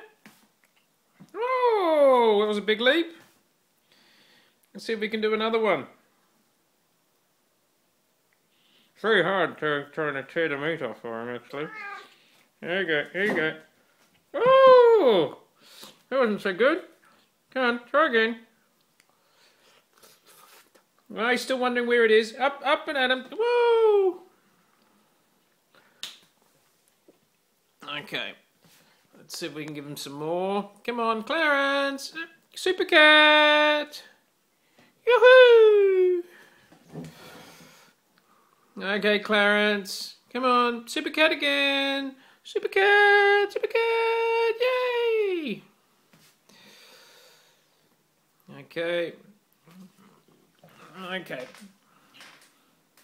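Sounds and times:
man speaking: 1.3s - 3.3s, 9.0s - 13.7s, 14.4s - 15.5s, 16.1s - 18.5s, 21.1s - 24.3s, 27.8s - 28.5s, 29.2s - 34.2s, 35.0s - 36.3s, 38.8s - 45.7s, 48.5s - 49.9s, 50.7s - 51.8s
cat making low sounds: 11.6s - 12.1s.

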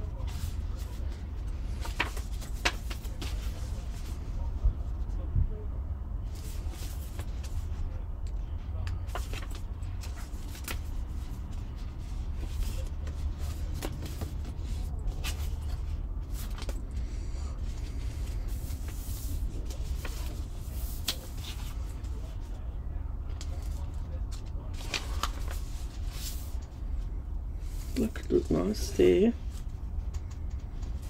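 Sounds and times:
pages rustling and flipping: 0.0s - 4.6s, 6.2s - 7.8s, 8.8s - 22.6s, 23.3s - 31.0s
steady low hum: 0.0s - 31.0s
light taps and crinkles: 29.6s - 31.0s.

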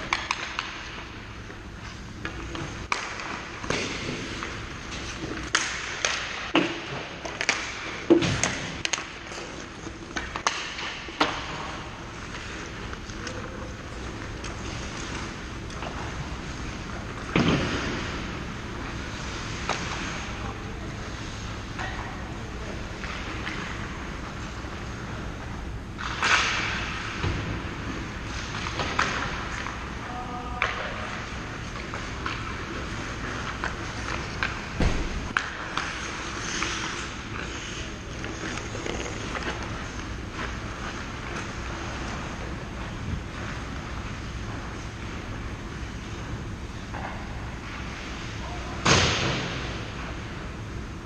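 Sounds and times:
hockey sticks clacking on puck: 0.0s - 20.4s, 26.0s - 27.6s, 28.3s - 34.7s, 35.3s - 46.3s
skates scraping ice: 1.8s - 48.8s
skate blade scraping ice: 31.0s - 46.1s.

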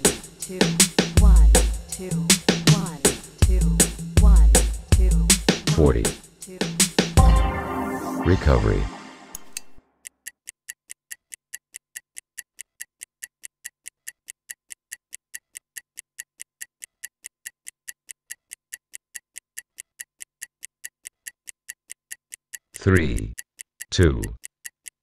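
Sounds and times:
stopwatch ticking: 9.5s - 25.0s.

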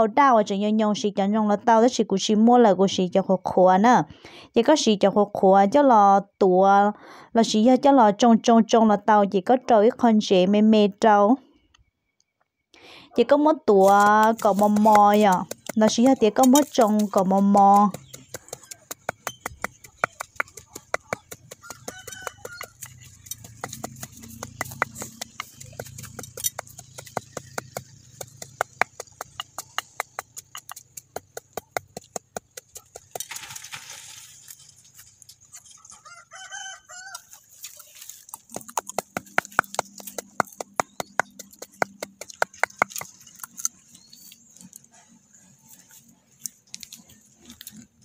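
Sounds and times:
wooden pestle pounding in mortar: 13.8s - 33.4s, 37.7s - 43.8s
bird calls: 14.3s - 33.1s, 35.3s - 48.0s.

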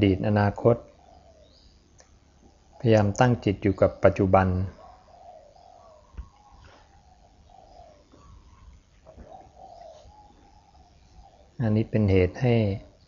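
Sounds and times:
bird cooing: 0.0s - 13.0s.

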